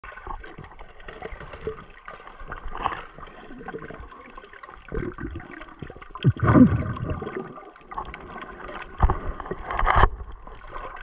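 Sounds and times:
water gurgling underwater: 0.0 - 11.0
small clicks underwater: 0.1 - 3.8, 4.9 - 11.0.

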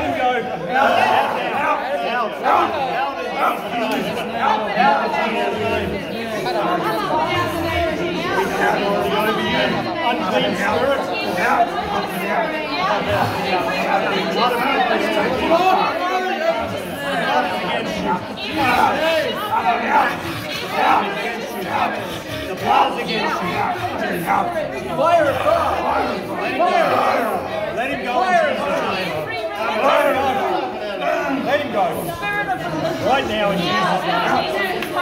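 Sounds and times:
men talking over one another: 0.0 - 35.0.

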